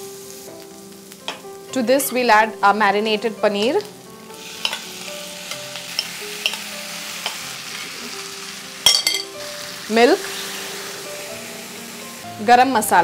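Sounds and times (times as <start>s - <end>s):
paneer sizzling in butter: 0.0s - 13.0s.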